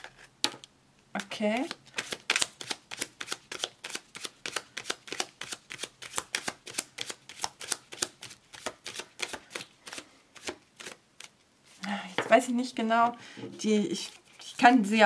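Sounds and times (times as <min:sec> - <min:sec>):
cards being shuffled: 0:01.6 - 0:12.3.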